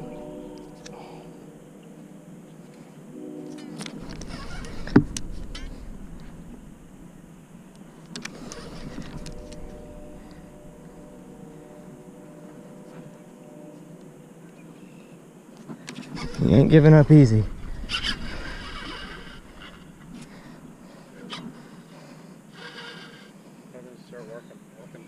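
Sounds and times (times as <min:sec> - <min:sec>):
fishing reel whirring: 0:17.8 - 0:20.0.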